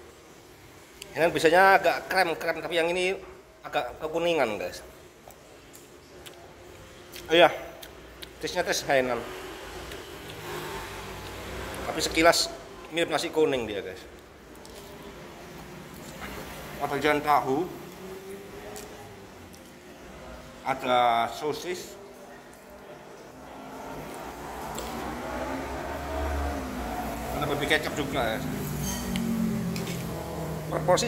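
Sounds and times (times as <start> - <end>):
vehicle engine passing: 8.8 - 12.9, 13.8 - 31.0
faint background voices: 14.2 - 30.9.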